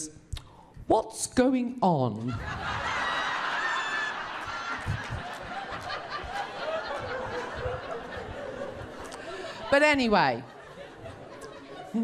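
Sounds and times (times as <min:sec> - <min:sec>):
audience laughing: 0:02.3 - 0:12.0.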